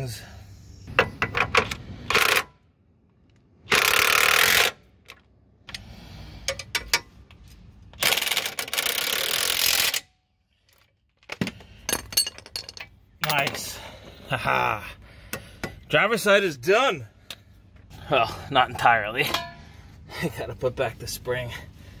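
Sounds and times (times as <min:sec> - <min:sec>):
impact wrench bursts: 0:03.6 - 0:04.8, 0:08.0 - 0:10.1.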